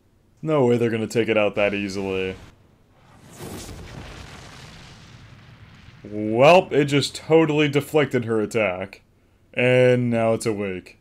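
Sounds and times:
explosion rumble and hiss: 0:01.5 - 0:08.0.

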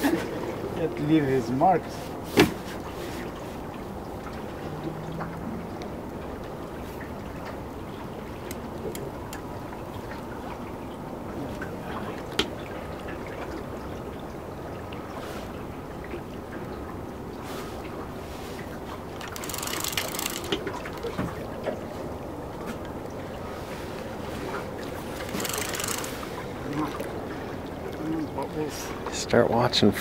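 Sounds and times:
river water washing around boat: 0:00.0 - 0:30.0
faint clicks: 0:08.4 - 0:09.4, 0:19.2 - 0:21.2, 0:25.2 - 0:26.2.

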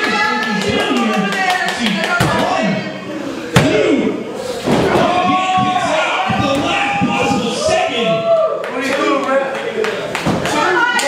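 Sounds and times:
voices shouting and calling out: 0:00.0 - 0:09.8, 0:10.4 - 0:11.0.

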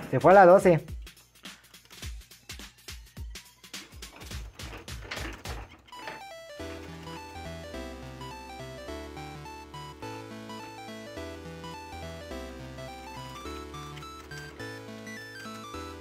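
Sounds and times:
balls clattering through pins: 0:03.8 - 0:08.8
electronic video game jingle: 0:05.9 - 0:16.0.

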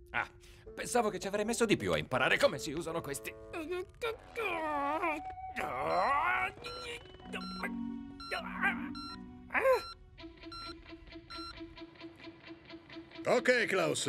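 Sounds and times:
cartoon music with beeping notes: 0:05.6 - 0:11.7
man groaning with strain: 0:09.5 - 0:09.9.

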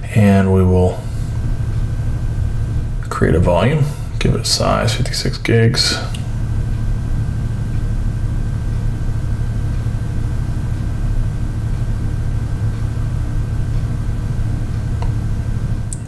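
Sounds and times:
machinery hum and rumble: 0:00.0 - 0:16.0.

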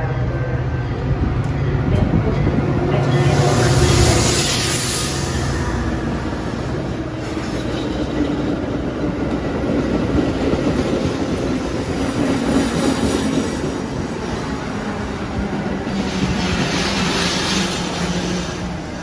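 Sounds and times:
diesel locomotive engine: 0:00.0 - 0:19.0.

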